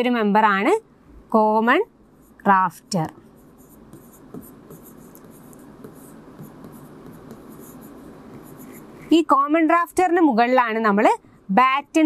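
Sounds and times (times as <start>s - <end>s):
low background hum: 0.0s - 12.0s
stylus scratching on screen: 2.1s - 9.3s.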